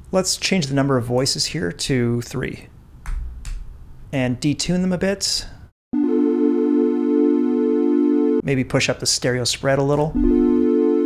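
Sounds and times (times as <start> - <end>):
held synth tone: 6.0 - 8.4, 10.2 - 11.0.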